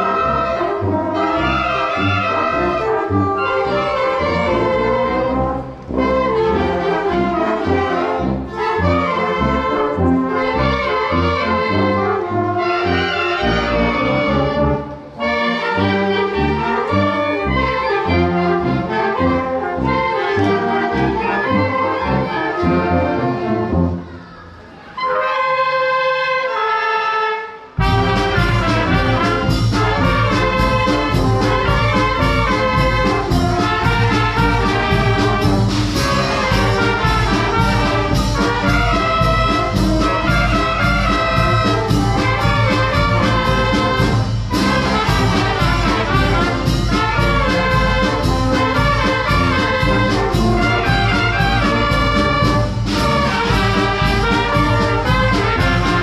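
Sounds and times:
wind band playing: 0.0s - 56.0s.

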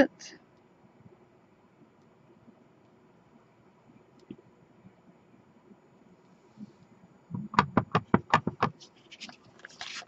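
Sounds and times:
stamp block knocking on ink pad: 7.3s - 8.8s.

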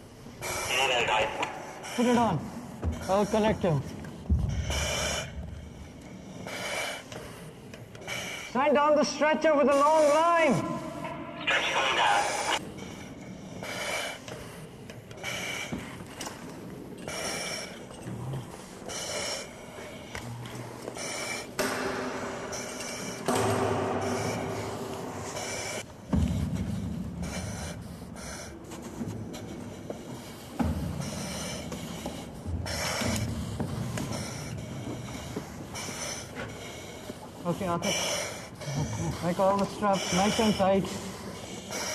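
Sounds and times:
breathing through face masks: 0.0s - 41.9s
muffled voices: 0.4s - 4.0s, 8.8s - 12.6s.

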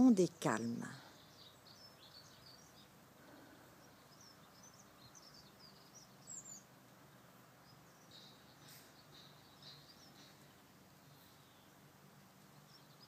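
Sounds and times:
small songbirds chirping: 0.2s - 13.0s.

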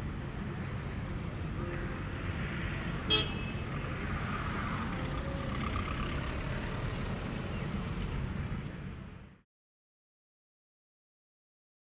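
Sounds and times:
road traffic rumble: 0.0s - 9.4s.

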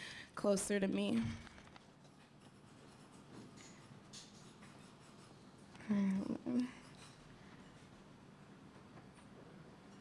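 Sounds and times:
person speaking: 5.7s - 6.9s.

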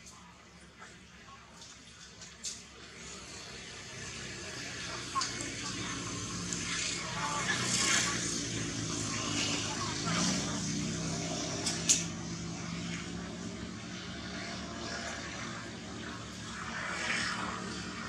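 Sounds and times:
low engine drone: 0.0s - 18.0s.

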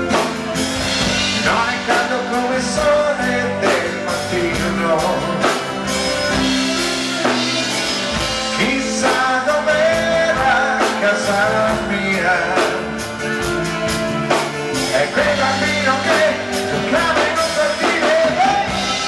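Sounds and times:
rock band playing: 0.0s - 19.0s
man singing into microphone: 1.2s - 6.1s, 8.4s - 13.4s, 14.8s - 19.0s.

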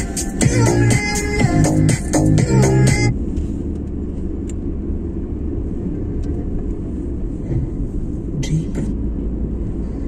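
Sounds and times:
car driving rumble: 0.0s - 10.0s.

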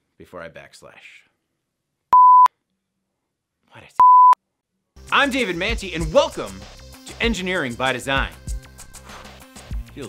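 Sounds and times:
censor bleep tone: 2.2s - 2.5s, 4.0s - 4.4s.

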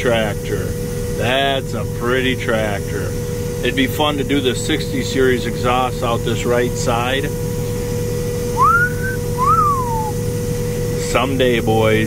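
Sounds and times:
combine hum and whine: 0.0s - 12.0s
person wolf whistling: 8.6s - 10.2s.

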